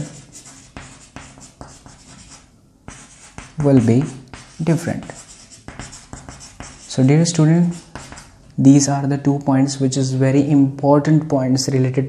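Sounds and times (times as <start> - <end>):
chalk scratching on blackboard: 0.0 - 8.4.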